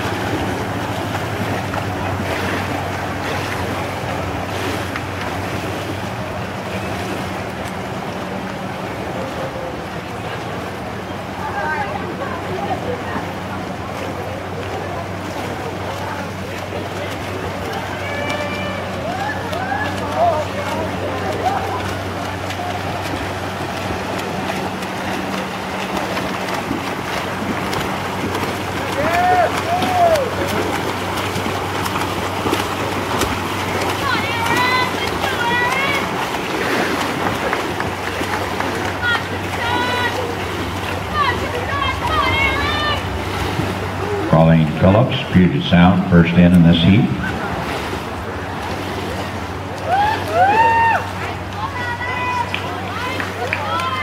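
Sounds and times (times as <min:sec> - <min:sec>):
low hum: 0:00.0 - 0:53.8
crowd noise: 0:00.0 - 0:54.0
water washing: 0:00.0 - 0:54.0
spectators shouting: 0:17.7 - 0:23.2, 0:28.1 - 0:44.5, 0:49.8 - 0:54.0.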